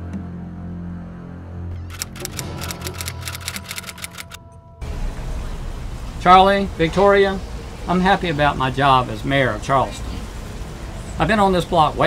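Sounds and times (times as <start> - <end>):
rapid sharp clicks: 1.9 - 4.4.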